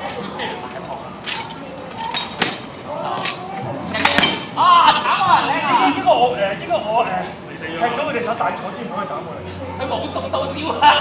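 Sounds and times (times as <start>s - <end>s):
sparring swords clacking: 0.5s - 4.7s.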